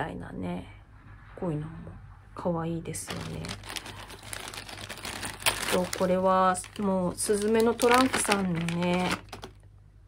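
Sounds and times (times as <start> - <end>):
plastic bags crinkling: 3.0 - 9.7.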